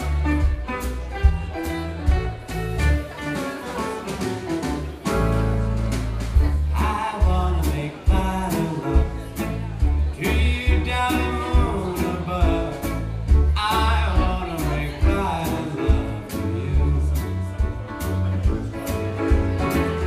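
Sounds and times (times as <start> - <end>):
live blues band playing: 0.0 - 20.0
man singing: 6.5 - 17.8.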